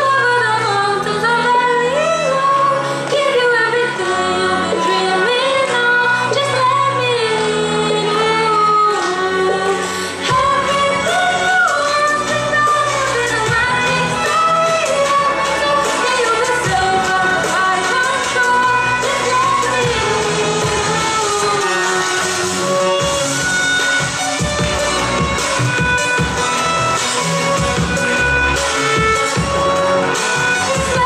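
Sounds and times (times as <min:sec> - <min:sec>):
woman singing ornamented melody: 0:00.0 - 0:23.0
bowed violin: 0:00.0 - 0:31.0.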